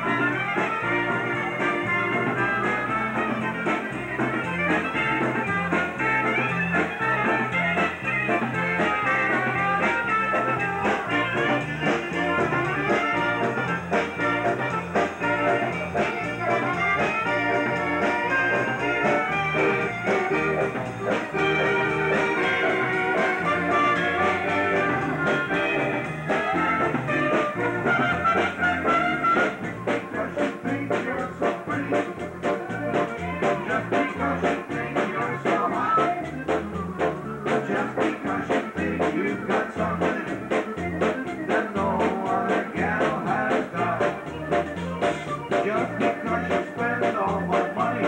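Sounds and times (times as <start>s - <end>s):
dance band playing: 0.0s - 48.0s
trumpet: 0.0s - 48.0s.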